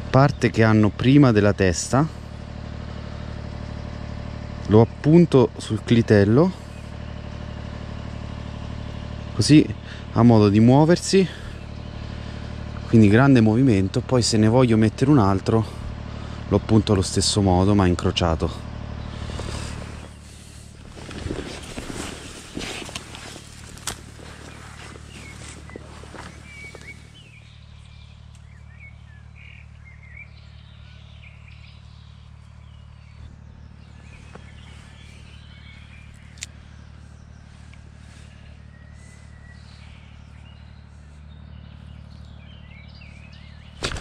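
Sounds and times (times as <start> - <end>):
small birds chirping: 0.0 - 44.0
steady low hum: 0.0 - 44.0
rustling handling noise: 19.1 - 27.3.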